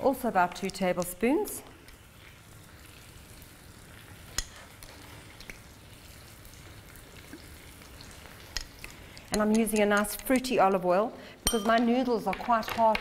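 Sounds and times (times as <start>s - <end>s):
fish sizzling in a frying pan: 0.0s - 10.5s.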